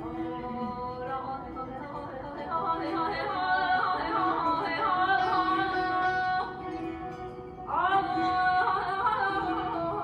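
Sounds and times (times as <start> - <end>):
woman singing: 0.0 - 10.0.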